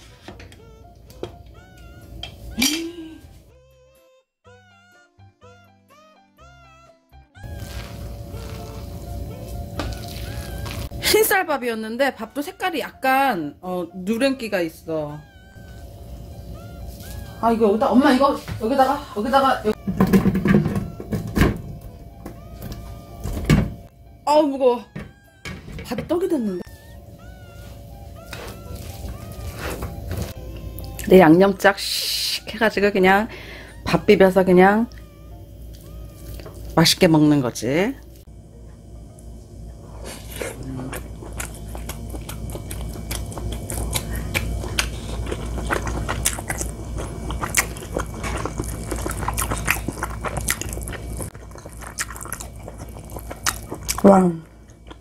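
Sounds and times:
playful background music: 0.0s - 37.4s
close-up chewing with mouth clicks: 40.2s - 55.0s.

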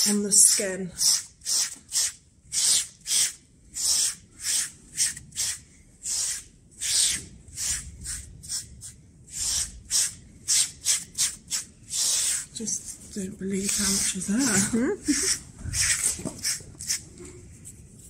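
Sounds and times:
blade scraping horse coat: 13.6s - 17.1s.

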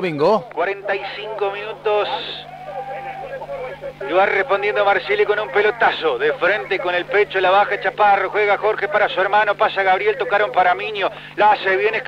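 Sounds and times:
electrical hum: 0.0s - 12.0s
voices murmuring: 0.0s - 12.0s.

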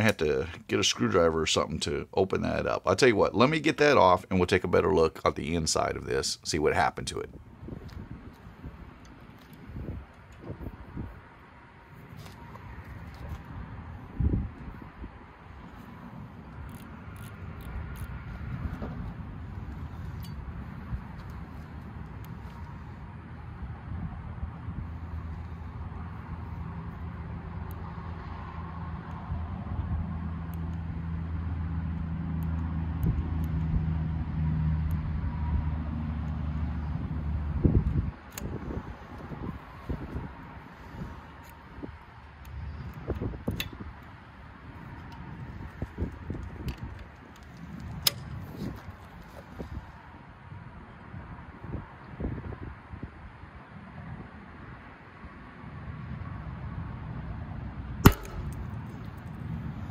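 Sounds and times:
vehicle engine hum: 7.2s - 50.8s.

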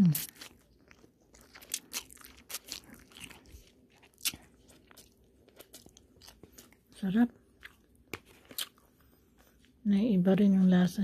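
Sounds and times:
woman's voice: 7.0s - 7.3s, 9.8s - 11.0s.

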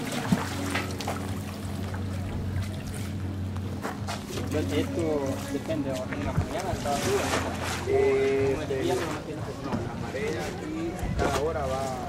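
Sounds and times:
waves lapping against concrete: 0.0s - 12.0s.

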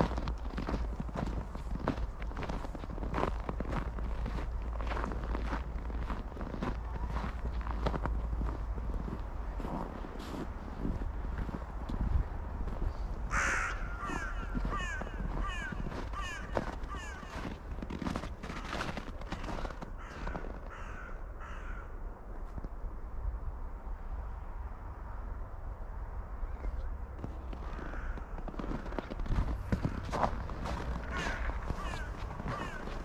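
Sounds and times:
footsteps crunching in snow: 0.0s - 21.0s, 27.2s - 33.0s
crow cawing: 13.3s - 17.6s, 18.4s - 22.0s, 27.6s - 33.0s.

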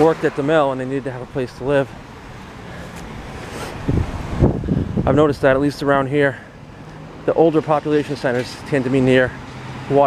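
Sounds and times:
road traffic passing: 0.0s - 10.0s
wind buffeting microphone: 3.1s - 6.0s.

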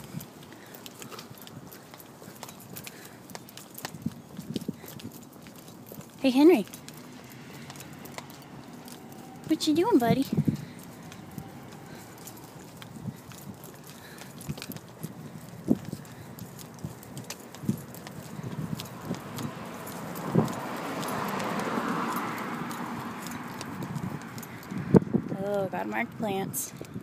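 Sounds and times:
footsteps on brick sidewalk: 0.0s - 27.0s.

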